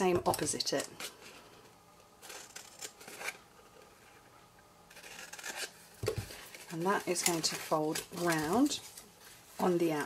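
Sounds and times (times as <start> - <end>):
scissors cutting paper: 6.7 - 8.8.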